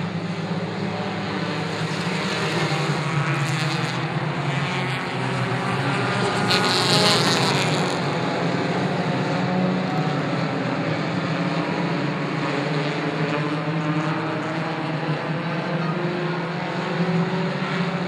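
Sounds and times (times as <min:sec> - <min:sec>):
racing car engines droning: 0:00.0 - 0:18.0.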